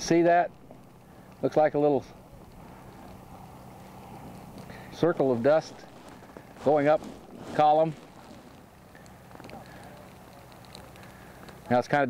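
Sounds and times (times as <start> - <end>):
low hum: 0.0 - 11.7
outdoor background noise: 0.0 - 12.0.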